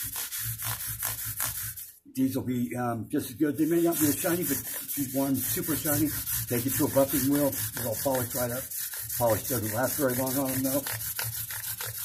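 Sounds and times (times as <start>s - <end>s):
sanding guitar frets: 3.6s - 12.0s.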